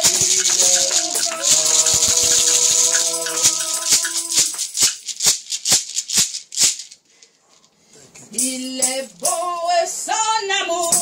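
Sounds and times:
percussion strokes: 0.0s - 7.0s, 8.4s - 9.8s.

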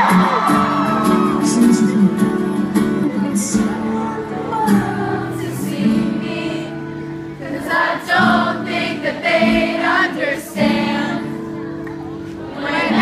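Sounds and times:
acoustic guitars playing chords: 0.0s - 13.0s
many voices singing together: 3.1s - 11.6s, 12.4s - 13.0s.

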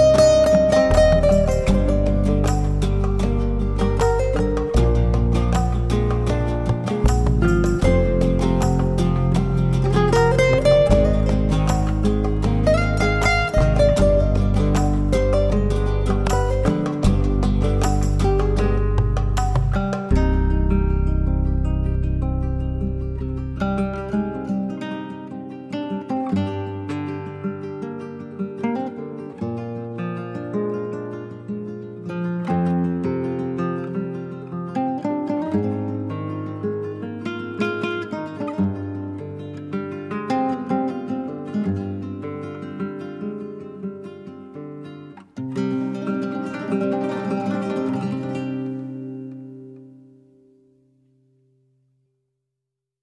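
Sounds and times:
acoustic guitar music: 0.0s - 51.9s.

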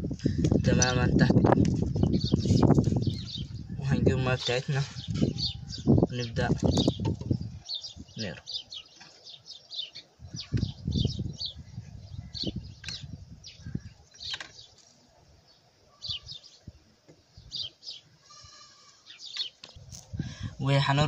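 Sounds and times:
small birds chirping: 0.0s - 21.0s.

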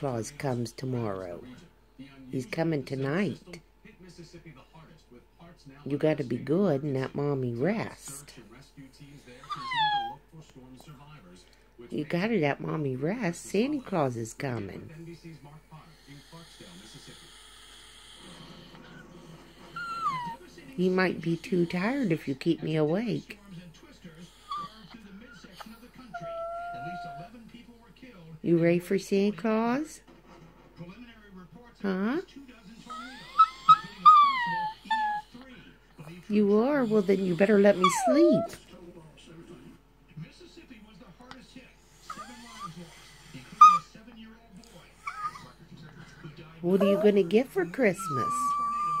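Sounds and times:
dog moaning and grumbling: 9.4s - 10.2s, 16.6s - 22.4s, 24.3s - 27.3s, 32.8s - 35.4s, 36.4s - 38.6s, 42.0s - 43.9s, 44.6s - 45.6s, 46.6s - 49.0s
dog whining: 9.4s - 10.2s, 18.3s - 20.5s, 24.4s - 27.3s, 32.8s - 35.4s, 36.9s - 38.6s, 42.0s - 43.9s, 45.0s - 45.6s, 46.7s - 47.3s, 47.9s - 49.0s.

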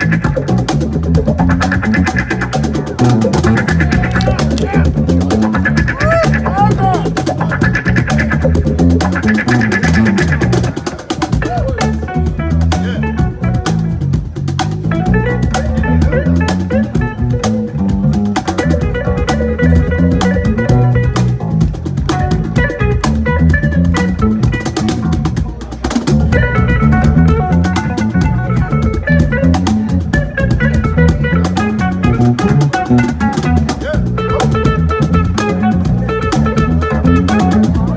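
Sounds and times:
cajon strikes: 0.0s - 37.9s
low bass line: 0.0s - 37.9s
plucked guitar notes: 0.0s - 37.9s.

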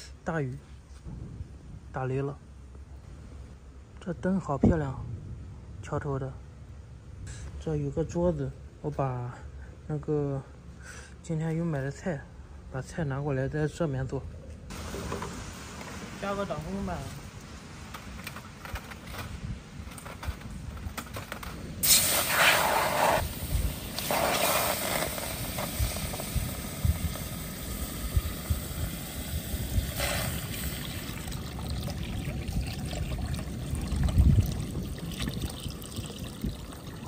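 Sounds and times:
rain falling: 14.7s - 18.7s
water poured into a wok: 28.2s - 37.0s.

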